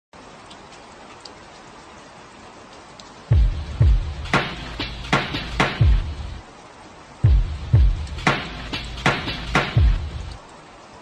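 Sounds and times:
steady rain falling: 0:00.1 - 0:11.0.

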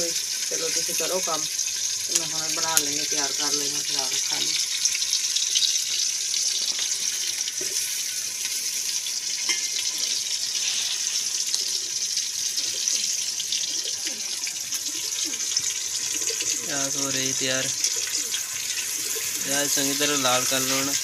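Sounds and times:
oil popping and crackling: 0:00.0 - 0:21.0
onions sizzling in hot oil: 0:00.0 - 0:21.0.

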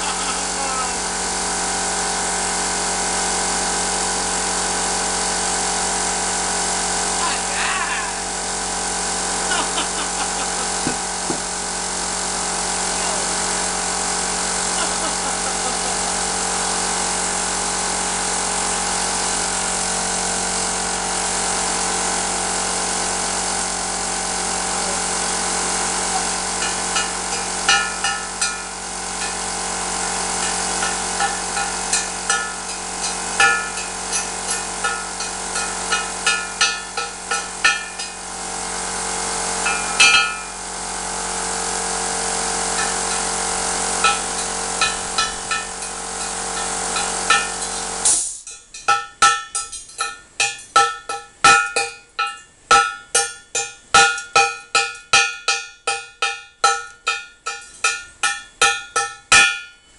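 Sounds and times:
plasma cutter arc hissing: 0:00.0 - 0:02.3, 0:06.9 - 0:48.6
sizzling crackles and pops: 0:26.1 - 0:40.6, 0:41.5 - 0:59.6.

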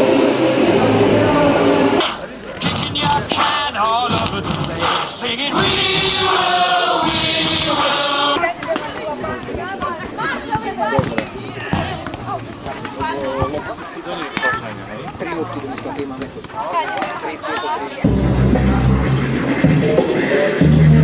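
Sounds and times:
children singing together: 0:05.6 - 0:08.4.

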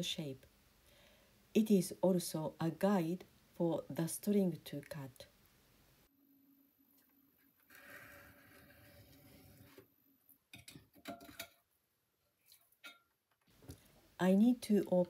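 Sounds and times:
metal tool scraping clay: 0:07.6 - 0:09.8.

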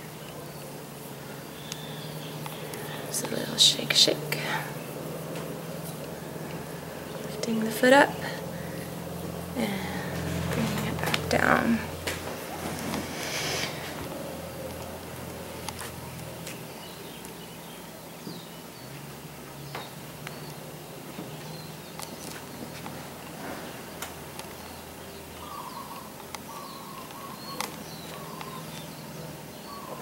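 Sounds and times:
birds chirping: 0:00.0 - 0:30.0.

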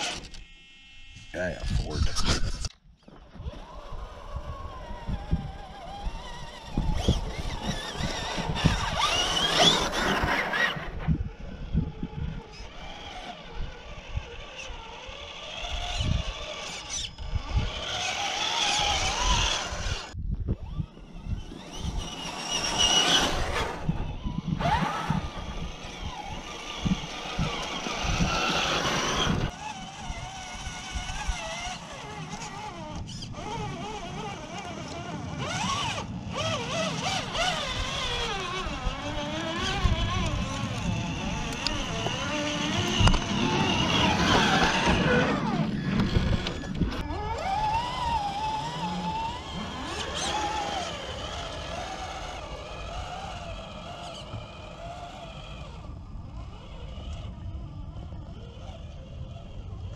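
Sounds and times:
toy truck motor whine: 0:00.0 - 0:01.5, 0:02.5 - 0:59.9
low bumps and rumbles: 0:34.9 - 0:59.9.

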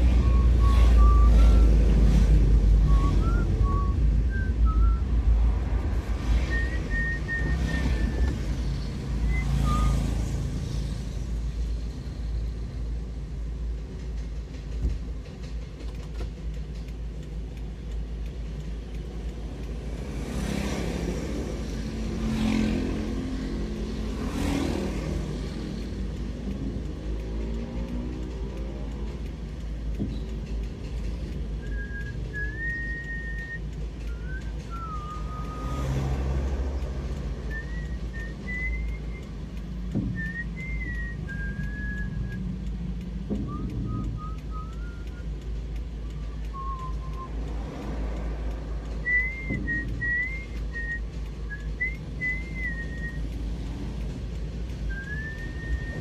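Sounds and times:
engine speeding up: 0:00.0 - 0:13.4, 0:19.2 - 0:56.0
vehicle driving in traffic: 0:00.0 - 0:56.0.

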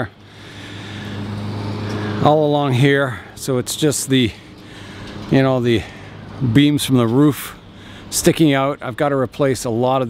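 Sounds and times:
vehicle engine and tyres humming: 0:00.0 - 0:10.0.

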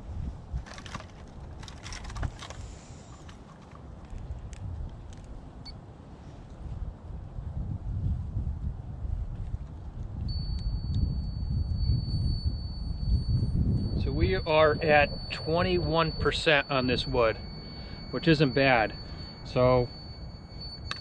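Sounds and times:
wind rumble on microphone: 0:00.0 - 0:21.0
moisture meter beeping: 0:10.3 - 0:21.0.

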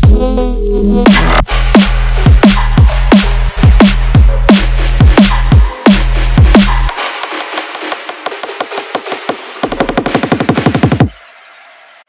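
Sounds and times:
deep sub-bass: 0:00.0 - 0:06.8
electronic drum roll: 0:01.1 - 0:11.3.

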